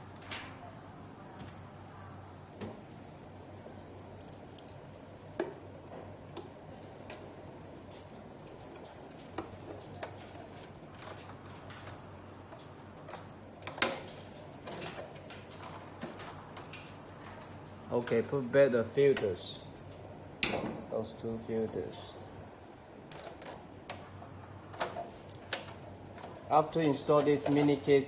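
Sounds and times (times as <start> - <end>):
faint steady hum: 0.0 - 28.0.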